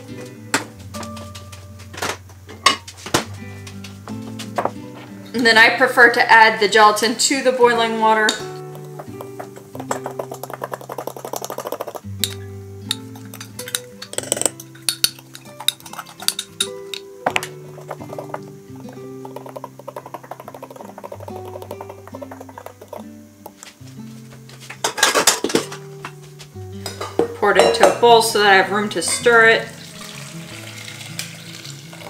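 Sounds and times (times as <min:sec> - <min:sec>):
dishes clattering: 0:02.0 - 0:03.3, 0:08.3 - 0:23.0, 0:24.6 - 0:26.2, 0:26.8 - 0:28.2
utensil clinking against glass cup: 0:09.2 - 0:17.0.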